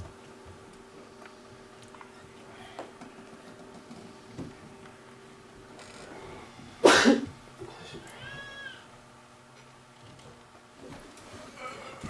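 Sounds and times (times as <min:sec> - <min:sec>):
person coughing: 0:06.8 - 0:07.3.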